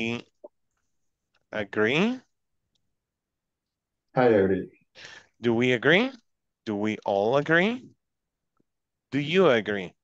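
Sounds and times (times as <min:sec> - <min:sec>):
spoken word: 0:04.2 - 0:04.7.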